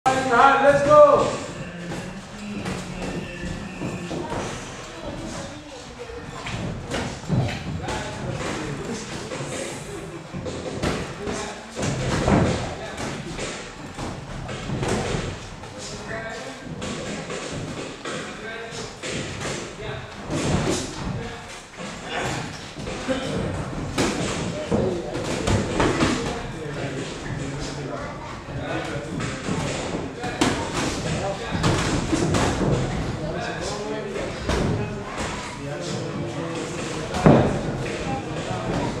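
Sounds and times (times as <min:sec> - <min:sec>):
footwork on ring canvas: 0:00.1 - 0:39.0
voices talking in echoing hall: 0:00.1 - 0:39.0.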